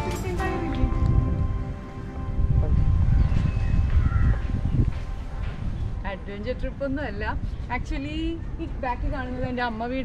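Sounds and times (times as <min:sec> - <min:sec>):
faint background music: 0:00.0 - 0:10.0
wind buffeting microphone: 0:00.0 - 0:10.0.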